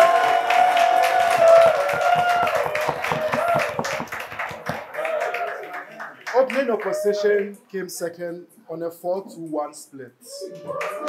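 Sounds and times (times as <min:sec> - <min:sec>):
small group clapping: 0:00.0 - 0:07.0, 0:10.6 - 0:11.0.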